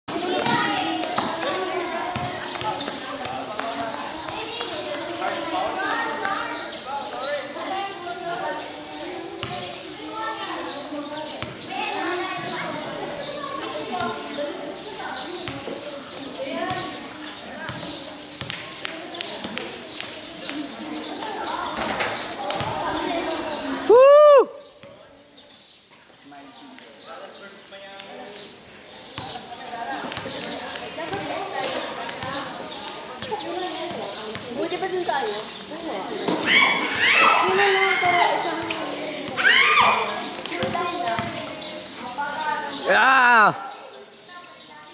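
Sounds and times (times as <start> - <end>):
basketball bouncing on concrete: 0.2 - 5.2, 9.4 - 9.7, 11.4 - 11.6, 15.4 - 15.7, 16.6 - 16.9, 17.6 - 20.1, 22.5 - 22.8, 29.2 - 29.4, 33.2 - 34.7, 37.9 - 39.4, 40.4 - 41.5
players calling out: 42.6 - 43.6.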